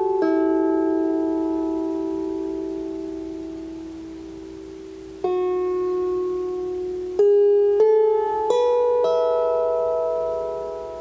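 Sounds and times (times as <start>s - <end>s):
lyre strings ringing: 0.0s - 11.0s.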